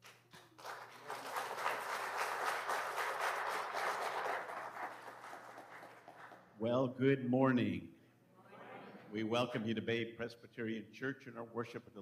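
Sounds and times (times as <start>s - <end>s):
congregation applauding: 0.0s - 6.6s.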